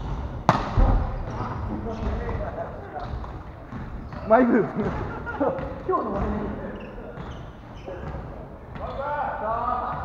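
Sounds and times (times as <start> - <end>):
volleyball smack: 0.4 - 1.1
low thud: 0.5 - 1.3.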